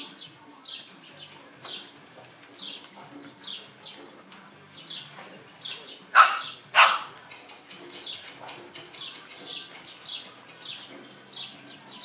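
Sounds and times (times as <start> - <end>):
puppy barking: 6.1 - 7.2
bird chirping: 7.7 - 12.0.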